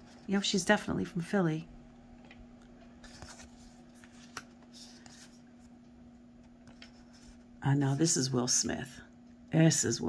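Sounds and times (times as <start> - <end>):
faint steady hum: 0.0 - 10.0
cards rustling and sliding: 3.0 - 5.8, 6.4 - 7.5.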